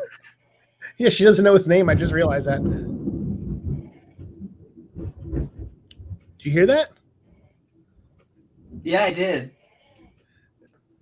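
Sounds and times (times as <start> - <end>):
thunder rumbling: 1.8 - 6.8, 8.6 - 9.0.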